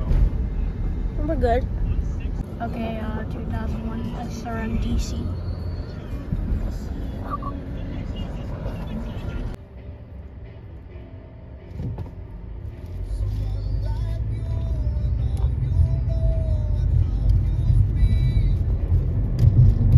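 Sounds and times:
engine and road rumble in car: 0:00.0 - 0:19.9.

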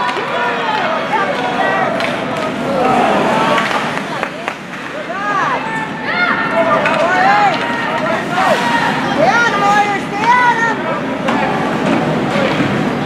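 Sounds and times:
hockey stick and puck clacks: 0:00.0 - 0:02.7, 0:03.5 - 0:05.0, 0:06.8 - 0:08.6
spectators calling out: 0:00.0 - 0:12.3.

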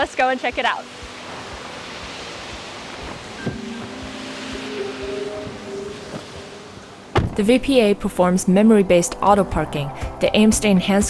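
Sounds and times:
rushing outdoor noise: 0:00.0 - 0:07.4
soft background music: 0:00.0 - 0:11.0.

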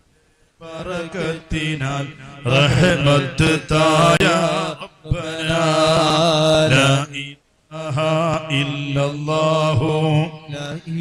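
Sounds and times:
male voices chanting: 0:00.6 - 0:11.0.

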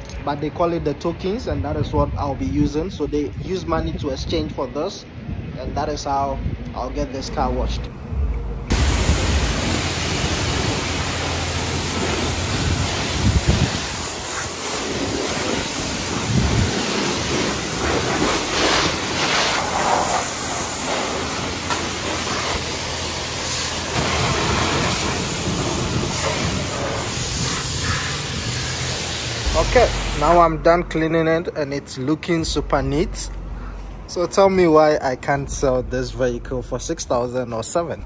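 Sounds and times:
high-pressure water spray on car: 0:08.7 - 0:30.4.

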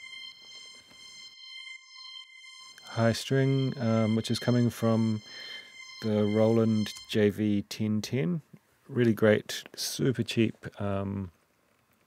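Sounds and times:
high synth string note: 0:00.0 - 0:07.5.

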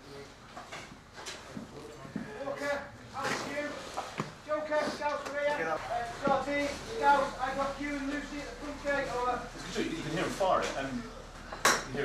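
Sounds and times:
men talking indistinctly: 0:01.3 - 0:12.0.

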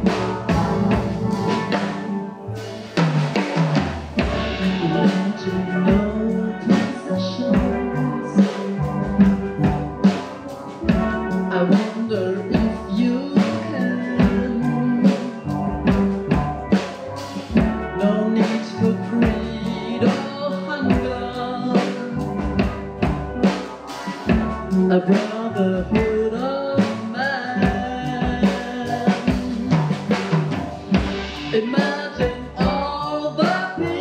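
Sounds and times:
steel pan orchestra playing: 0:00.0 - 0:34.0.

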